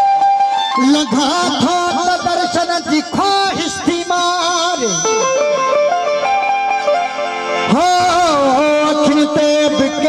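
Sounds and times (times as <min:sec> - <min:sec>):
harmonium melody: 0:00.0 - 0:10.0
man singing: 0:00.8 - 0:05.3, 0:07.6 - 0:10.0
plucked string drone: 0:01.0 - 0:10.0.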